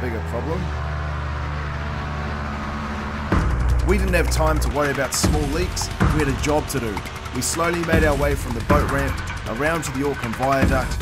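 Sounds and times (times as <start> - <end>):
fan boat engine droning: 0.0 - 11.0.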